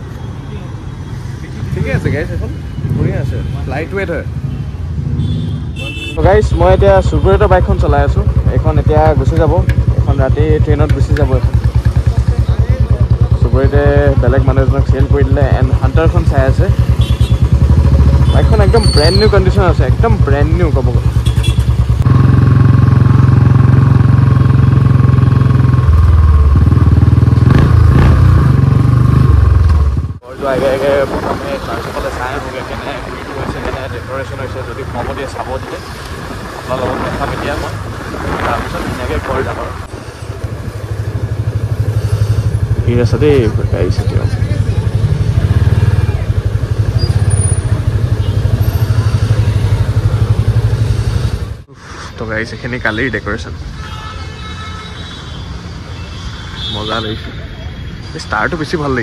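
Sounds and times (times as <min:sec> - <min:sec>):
motorcycle engine running: 0:05.9 - 0:30.4, 0:39.3 - 0:51.7.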